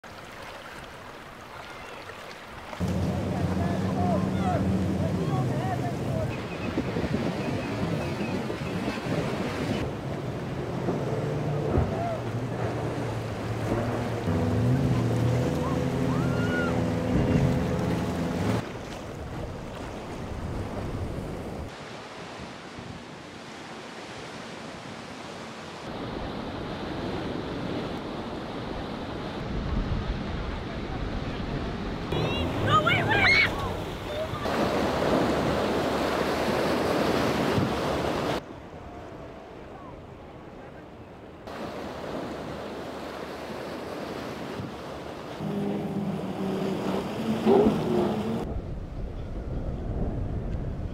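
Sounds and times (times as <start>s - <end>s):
waves crashing against hulls: 0.0s - 38.5s, 41.4s - 50.9s
boat engines droning: 2.6s - 21.7s, 30.6s - 50.5s
wind buffeting microphone: 2.8s - 10.0s, 47.2s - 50.9s.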